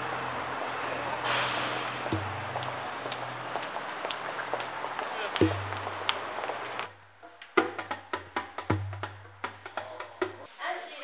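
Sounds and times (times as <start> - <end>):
vehicle engine humming: 0.0 - 7.0
city street traffic: 0.0 - 7.2
short loud hiss: 1.2 - 2.1.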